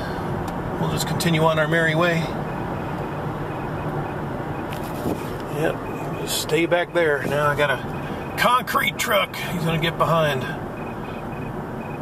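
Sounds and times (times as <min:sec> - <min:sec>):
low engine hum: 0:00.0 - 0:12.0
road and tyre noise: 0:00.0 - 0:12.0.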